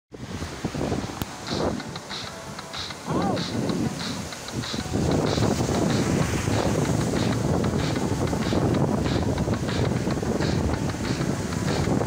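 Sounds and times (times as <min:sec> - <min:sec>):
breaking surf: 0:00.1 - 0:12.0
wind buffeting microphone: 0:00.1 - 0:12.0.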